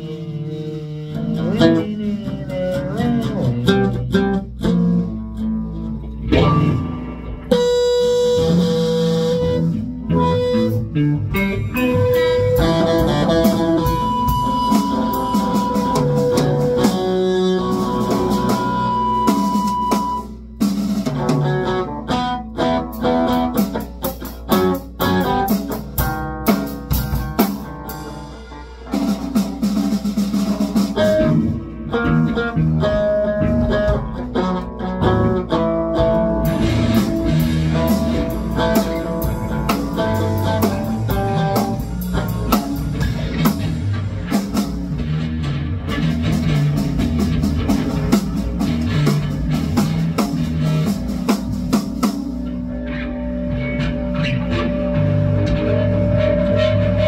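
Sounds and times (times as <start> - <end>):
amplified acoustic guitar: 0.0 - 26.6, 30.7 - 57.0
electric guitar sustained notes: 0.0 - 29.8, 30.9 - 57.0
drum kit: 0.0 - 57.0.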